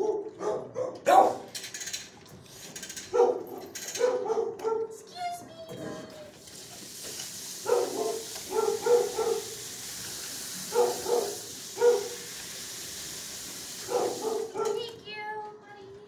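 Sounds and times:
dogs barking: 0.0s - 1.5s, 3.1s - 5.1s, 7.6s - 9.7s, 10.6s - 12.2s, 13.8s - 15.0s
steady hiss: 6.4s - 14.6s.

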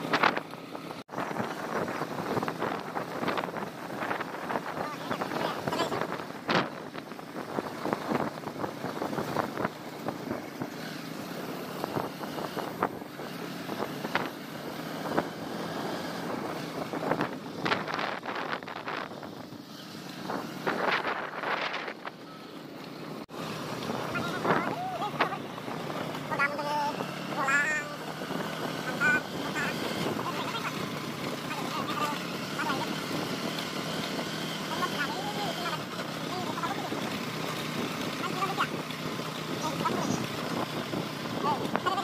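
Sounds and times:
wind buffeting microphone: 0.0s - 22.8s, 23.4s - 42.0s
motorcycle engine running: 0.0s - 42.0s
voices: 2.6s - 6.8s, 23.8s - 42.0s.

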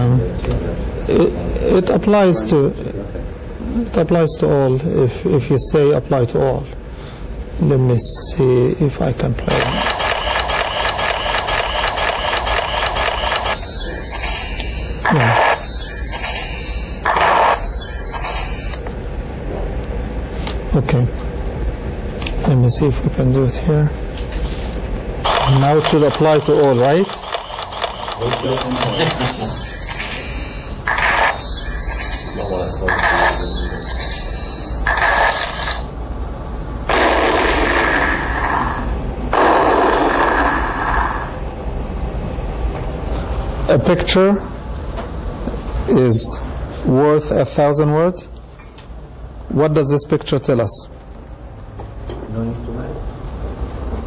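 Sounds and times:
repeating rhythmic sound over speakers: 9.6s - 18.8s, 25.3s - 35.8s
slide animation sound effects: 25.3s - 35.9s.

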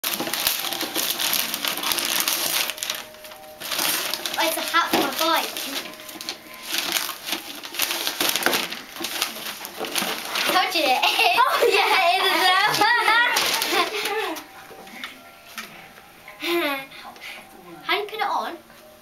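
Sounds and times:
paper tearing: 0.0s - 14.1s
paper rustling and crinkling: 0.0s - 15.8s.

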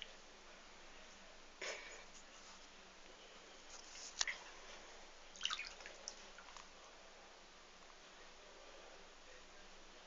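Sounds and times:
wet clicks and drips in bathtub: 5.4s - 6.7s.

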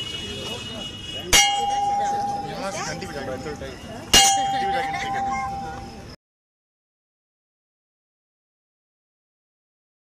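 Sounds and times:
brass bell ringing: 1.2s - 5.9s.

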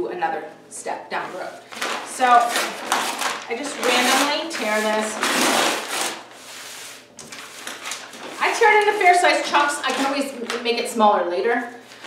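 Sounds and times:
paper tearing: 1.7s - 10.3s
paper rustling and crinkling: 1.7s - 10.9s.

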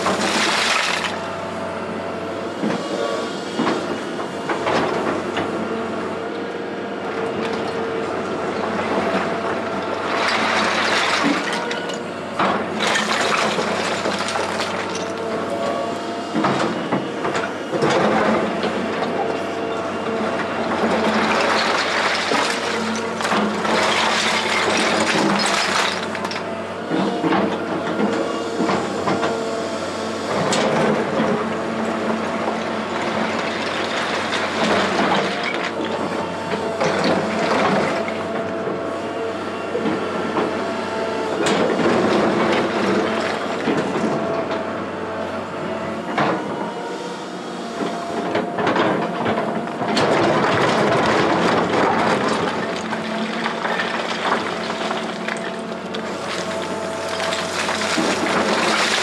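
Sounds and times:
excavator diesel engine: 0.0s - 59.0s
rock and steel clattering: 21.0s - 26.4s.

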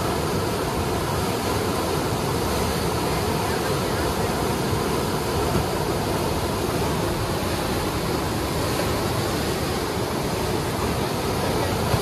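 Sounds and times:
white water rushing: 0.0s - 12.0s.

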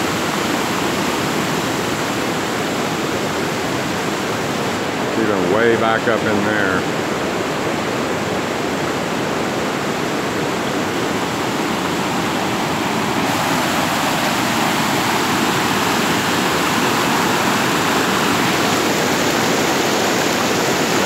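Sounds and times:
fast-moving water rushing: 0.0s - 21.0s.

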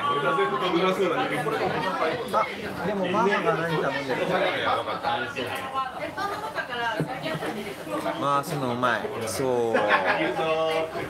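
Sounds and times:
men talking: 0.0s - 5.5s, 8.2s - 11.0s
restaurant chatter: 0.0s - 11.0s.

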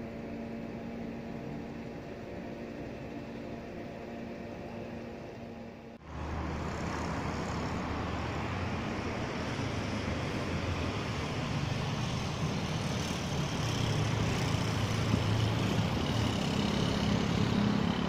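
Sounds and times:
traffic noise: 0.0s - 18.0s
vehicle engine hum: 0.0s - 18.0s.

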